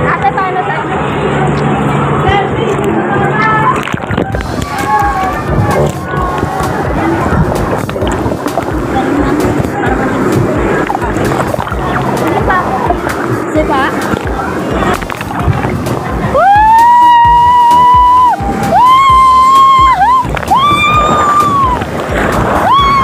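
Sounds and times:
water rushing down waterslide: 0:00.0 - 0:23.0
woman screaming: 0:16.4 - 0:21.8, 0:22.6 - 0:23.0.

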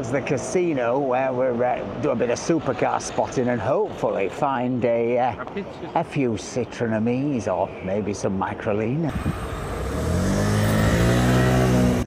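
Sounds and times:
vehicle engine accelerating: 0:09.1 - 0:12.0.

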